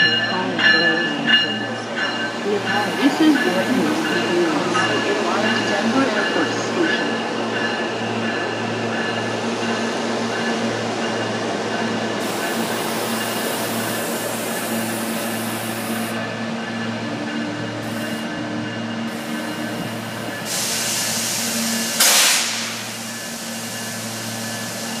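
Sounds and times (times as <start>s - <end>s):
train equipment humming: 0.0s - 25.0s
loud hiss: 20.5s - 25.0s.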